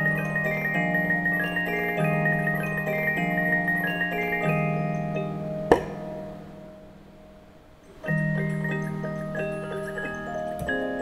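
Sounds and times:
music box playing a tune: 0:00.0 - 0:11.0.

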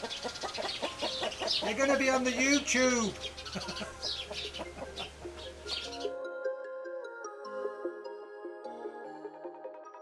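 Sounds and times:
hens clucking: 0:00.0 - 0:06.1
birds chirping: 0:00.0 - 0:06.3
background music: 0:00.0 - 0:10.0.

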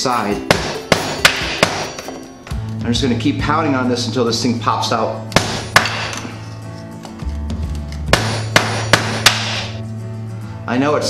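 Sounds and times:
mallet knocks on metal: 0:00.5 - 0:02.0, 0:08.1 - 0:09.8.

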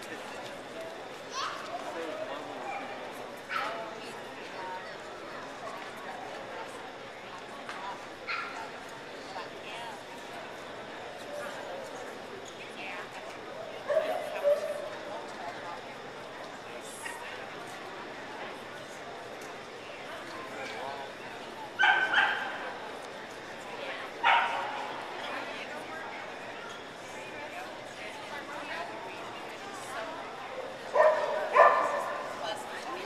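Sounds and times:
voices in a large hall: 0:00.0 - 0:33.0
dog barking: 0:21.8 - 0:22.5, 0:24.2 - 0:24.7, 0:30.9 - 0:32.2.

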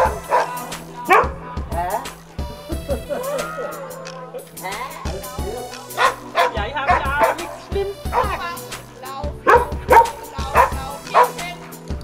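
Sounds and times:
dog barking: 0:00.0 - 0:01.4, 0:05.9 - 0:08.5, 0:09.4 - 0:11.8
background music with steady beat: 0:00.0 - 0:12.0.

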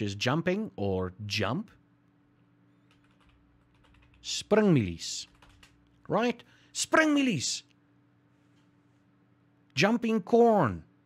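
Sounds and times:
low steady hum: 0:00.0 - 0:11.0
typing on computer keyboard: 0:02.8 - 0:04.4, 0:05.2 - 0:06.0.

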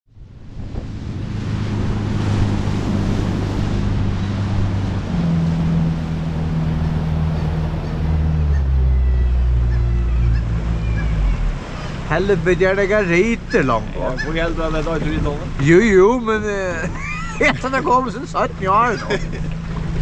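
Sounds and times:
wind on microphone: 0:00.1 - 0:12.1
boat engine running: 0:00.1 - 0:20.0
water rushing along hull: 0:00.1 - 0:20.0.

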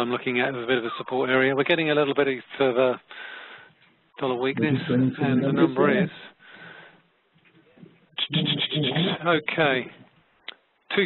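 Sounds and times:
man speaking: 0:04.2 - 0:06.4, 0:08.2 - 0:10.0.

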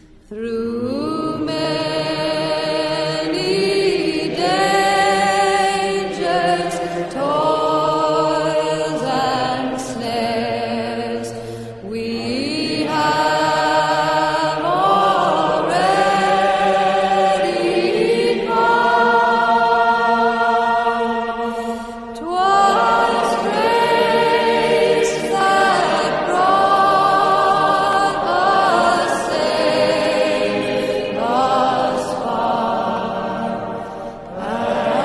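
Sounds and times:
slow hymn-like singing: 0:00.0 - 0:35.0.

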